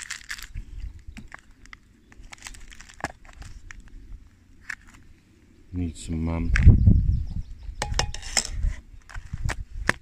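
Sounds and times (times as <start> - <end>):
metal spoon scraping plastic tub: 7.8 - 8.8.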